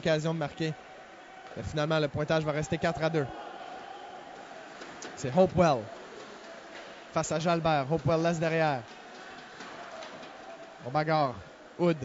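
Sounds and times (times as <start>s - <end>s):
arena crowd murmur: 0.0s - 12.0s.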